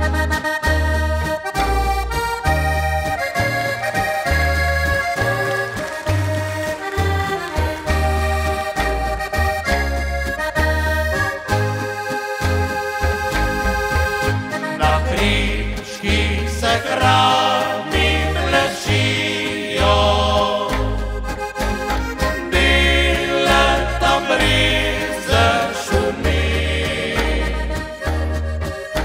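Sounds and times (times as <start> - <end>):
acoustic guitar chords: 0.0 - 29.0
button accordion folk melody: 0.0 - 29.0
double bass plucking: 0.0 - 29.0
men singing: 14.7 - 21.1, 22.4 - 28.0.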